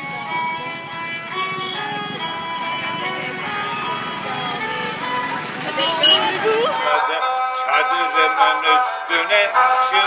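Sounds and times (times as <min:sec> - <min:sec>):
crowd noise: 0:00.0 - 0:10.0
steady musical tone: 0:00.0 - 0:10.0
traffic: 0:00.0 - 0:10.0.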